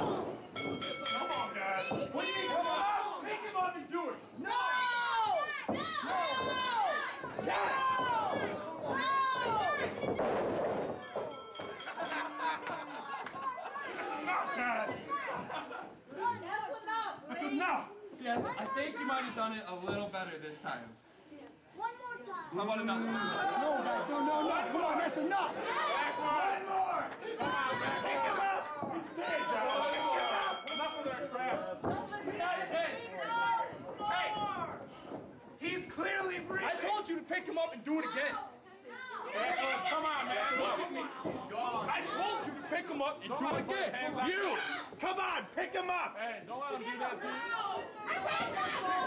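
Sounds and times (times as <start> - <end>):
crowd shouting: 0.0 - 10.4, 22.8 - 34.8, 35.6 - 46.1, 46.8 - 49.0
people talking over one another: 21.8 - 49.0.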